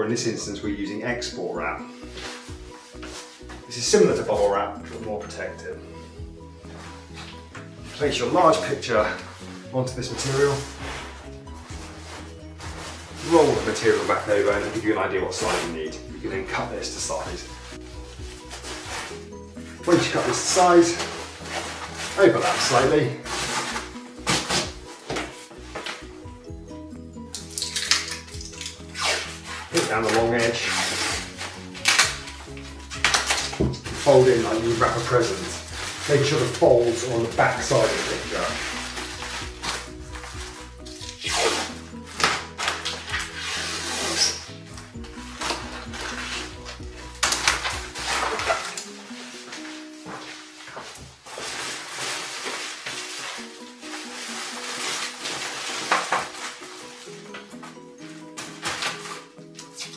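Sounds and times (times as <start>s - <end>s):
background music: 0.0s - 59.9s
plastic packing sheet crinkling: 6.6s - 26.2s, 27.3s - 59.9s.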